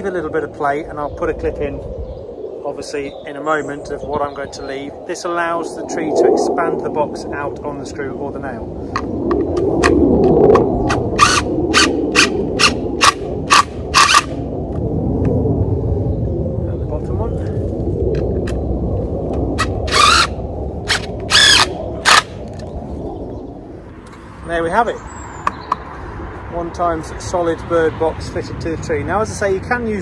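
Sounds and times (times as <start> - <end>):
steady low rumble: 0.0 - 30.0
cordless drill driving a screw: 19.9 - 20.3, 20.9 - 22.2.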